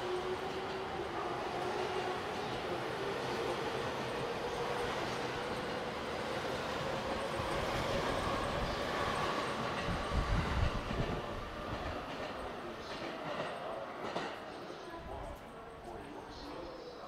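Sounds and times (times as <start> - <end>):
train rolling noise: 0.0 - 17.0.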